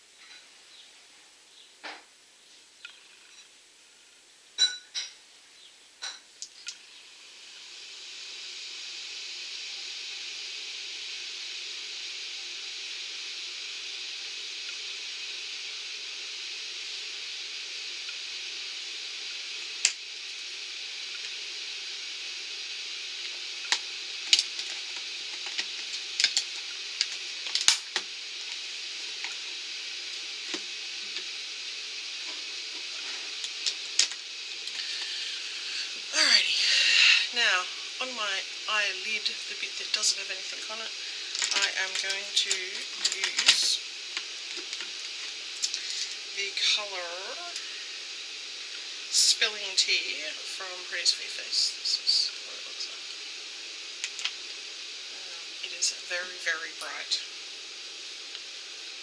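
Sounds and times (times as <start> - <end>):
steady hiss: 0.0 - 59.0.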